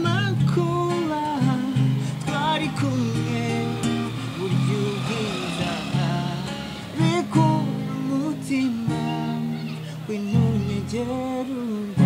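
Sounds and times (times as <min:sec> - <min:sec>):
acoustic guitar: 0:00.0 - 0:12.0
man singing: 0:00.0 - 0:12.0.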